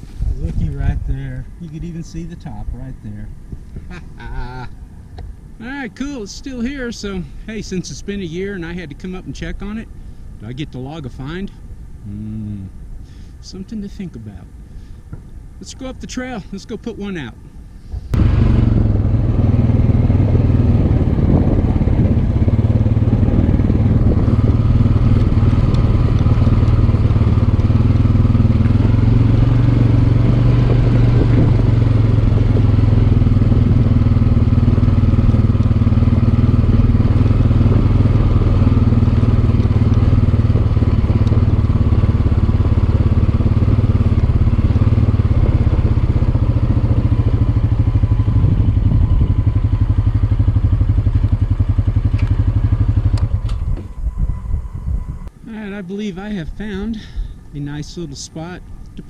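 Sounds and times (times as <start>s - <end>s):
quad bike engine humming: 0.0s - 59.0s.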